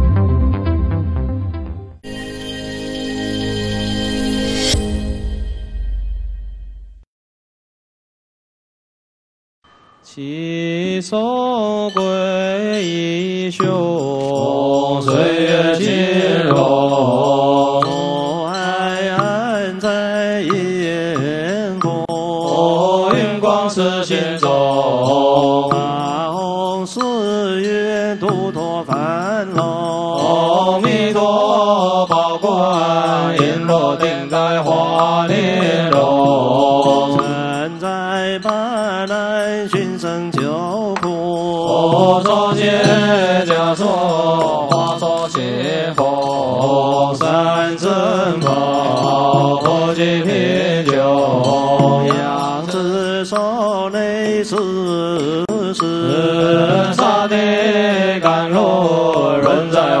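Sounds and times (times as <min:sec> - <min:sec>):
monks chanting: 0:14.1 - 0:19.3, 0:22.3 - 0:26.3, 0:30.0 - 0:37.8, 0:41.5 - 0:52.9, 0:55.2 - 1:00.0.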